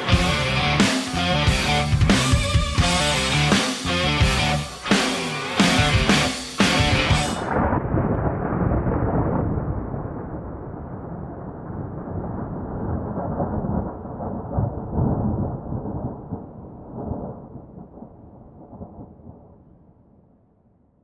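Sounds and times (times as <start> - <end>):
thunder rumbling: 5.6 - 20.8.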